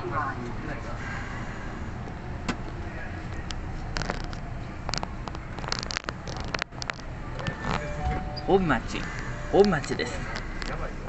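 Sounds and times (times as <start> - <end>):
subway train rumbling: 0.0 - 3.8, 7.1 - 11.0.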